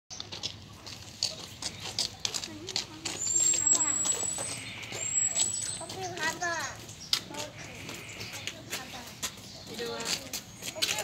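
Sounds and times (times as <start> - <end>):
mongooses chirping: 3.2 - 6.3.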